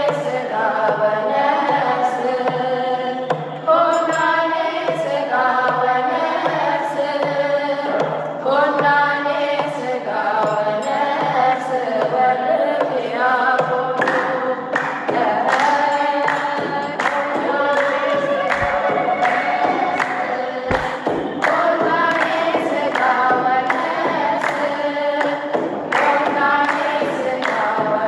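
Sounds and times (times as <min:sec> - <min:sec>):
woman singing a hymn: 0:00.0 - 0:25.4, 0:26.0 - 0:28.0
choir singing along: 0:00.0 - 0:28.0
sharp percussive strikes: 0:00.0 - 0:28.0.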